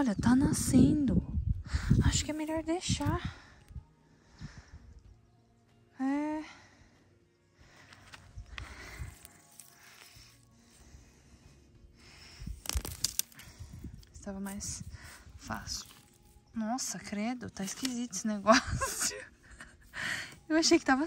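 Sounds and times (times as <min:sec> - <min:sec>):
hand scraping dry soil: 0:02.1 - 0:03.2, 0:07.9 - 0:21.0.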